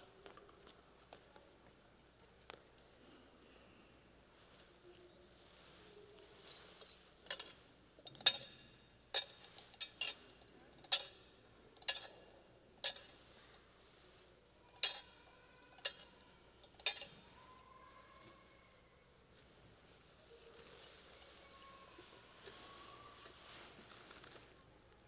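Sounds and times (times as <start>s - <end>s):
thurible chains clinking: 6.4s - 13.7s, 14.6s - 17.4s.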